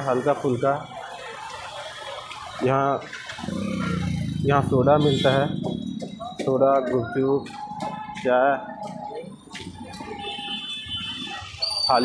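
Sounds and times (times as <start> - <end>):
crowd chatter: 0.0 - 12.0
passing traffic: 0.0 - 12.0.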